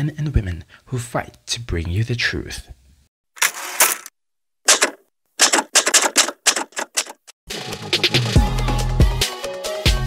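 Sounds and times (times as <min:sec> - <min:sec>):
typewriter keys clacking: 0:04.7 - 0:07.3
music: 0:07.5 - 0:10.0.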